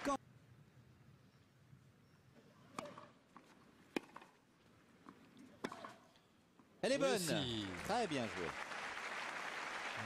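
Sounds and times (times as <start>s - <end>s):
tennis racket hitting ball: 3.9s - 4.4s.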